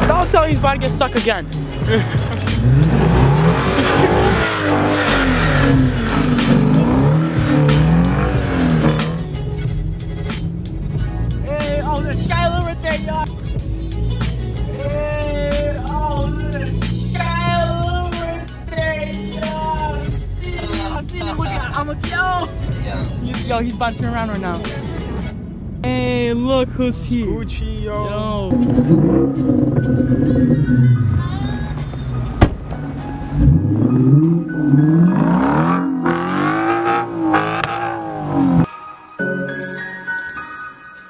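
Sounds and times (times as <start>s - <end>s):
car engine revving: 0.0s - 18.5s, 22.7s - 38.7s
music with singing: 0.0s - 25.2s, 28.3s - 37.0s.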